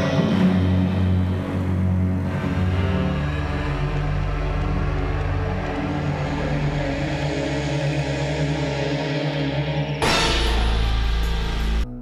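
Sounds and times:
suspenseful droning score: 0.0s - 12.0s.

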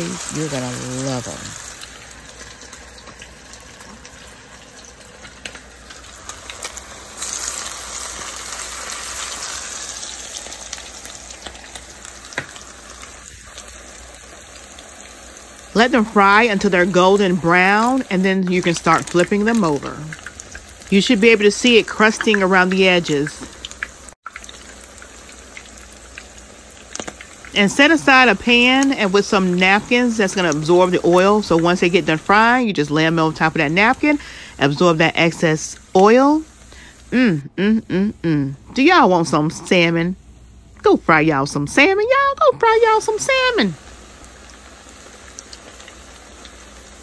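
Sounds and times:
patties sizzling in a skillet: 0.0s - 37.3s, 38.8s - 47.0s.

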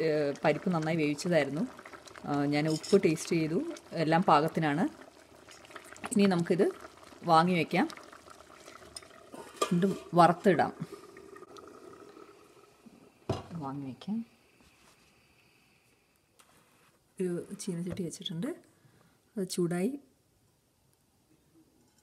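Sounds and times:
curry simmering in a pot: 0.0s - 13.3s
metal spoon stirring: 2.6s - 3.2s.

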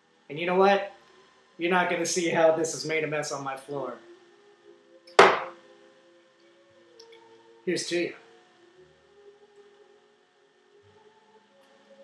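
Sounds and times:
faint steady background tones: 0.0s - 12.0s
glass set down on hard surface: 5.2s - 5.6s.

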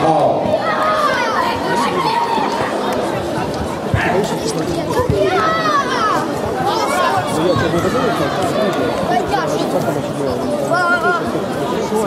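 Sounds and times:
crowd voices talking and calling: 0.0s - 12.0s.

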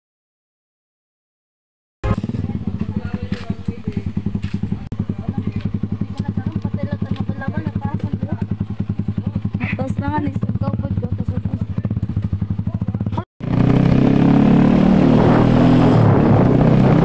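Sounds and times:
small motorcycle engine running: 2.0s - 17.0s.

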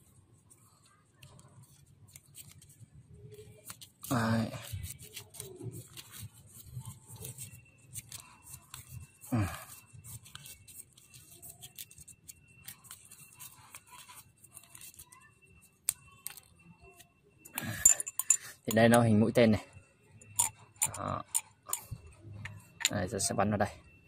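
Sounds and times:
tape crackling and stretching: 0.0s - 17.8s.

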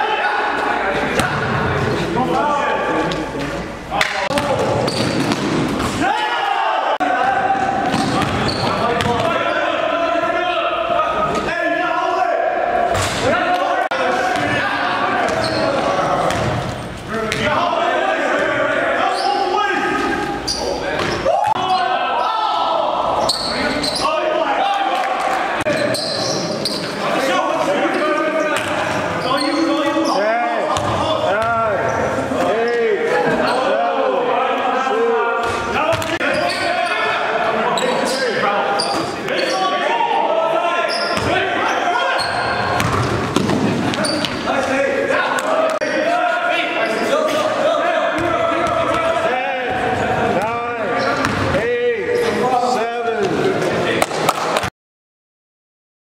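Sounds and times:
players' voices calling out: 0.0s - 54.1s
basketball bouncing on gym floor: 7.8s - 9.3s, 42.8s - 44.4s.

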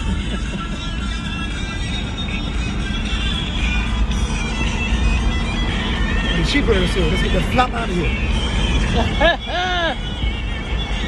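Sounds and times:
music from car stereo: 0.0s - 11.0s
vehicle rumble on road: 0.0s - 11.0s.

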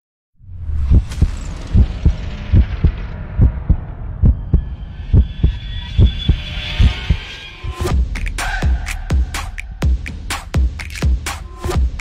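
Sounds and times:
deep bass heartbeat thumps: 0.7s - 6.4s, 7.9s - 12.0s
electronic music: 2.5s - 12.0s.

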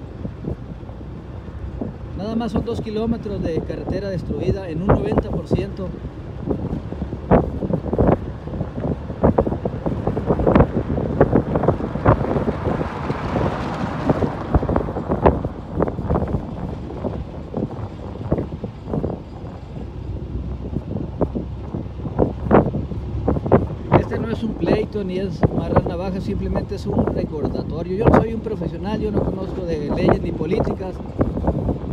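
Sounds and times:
wind buffeting a microphone: 0.0s - 31.9s.

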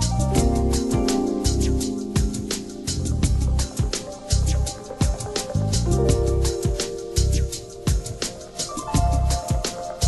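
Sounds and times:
instrumental music with beat: 0.0s - 10.0s.

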